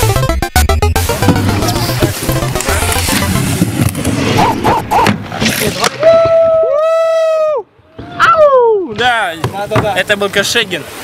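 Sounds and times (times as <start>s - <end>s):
loud music with low beat: 0.0s - 4.1s.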